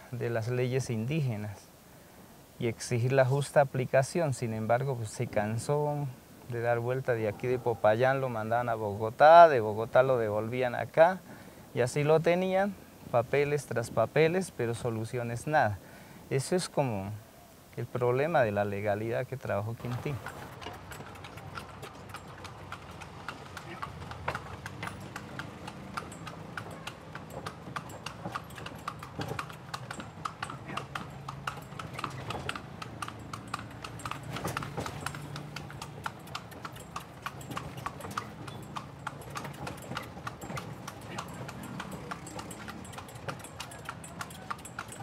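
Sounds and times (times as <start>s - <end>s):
horse hooves clip-clopping on pavement: 18.6s - 45.0s.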